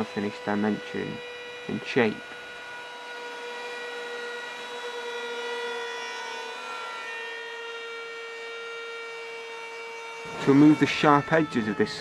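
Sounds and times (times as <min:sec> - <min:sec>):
router high-pitched whine: 0:00.0 - 0:12.0.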